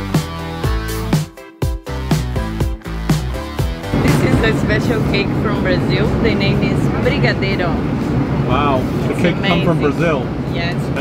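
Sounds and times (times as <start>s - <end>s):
jet cabin noise: 3.8s - 11.0s
people talking: 4.0s - 7.9s, 8.5s - 11.0s.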